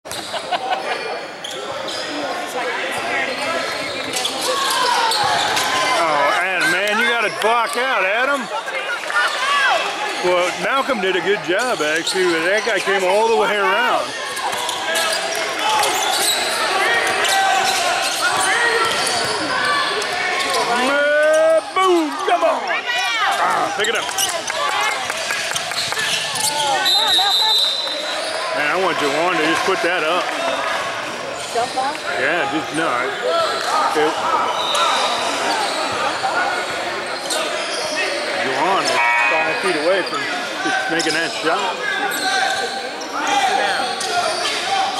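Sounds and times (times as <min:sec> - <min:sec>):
players calling out: 0:00.1 - 0:44.9
voices in echoing hall: 0:00.1 - 0:44.9.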